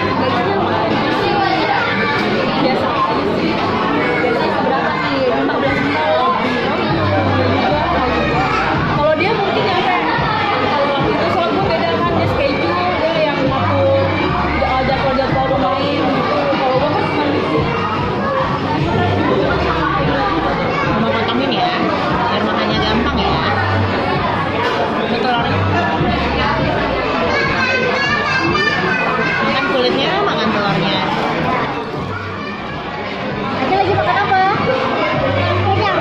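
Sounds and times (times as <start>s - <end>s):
background music: 0.0s - 36.0s
indistinct chattering voices: 0.0s - 36.0s.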